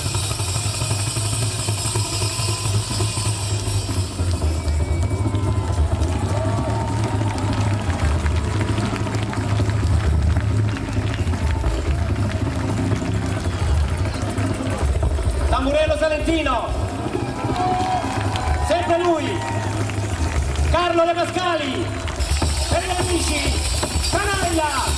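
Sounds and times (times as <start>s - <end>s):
heavy steady bass: 0.0s - 24.9s.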